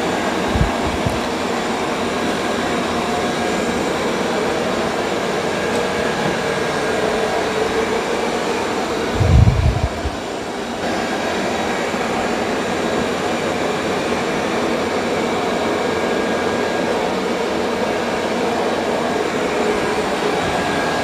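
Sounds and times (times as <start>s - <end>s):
brief low rumble: 9.1s - 10.2s.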